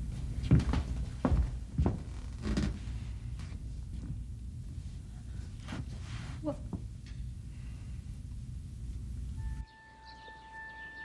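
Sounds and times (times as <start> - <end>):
background music held note: 9.4 - 11.0
birds chirping: 9.5 - 11.0.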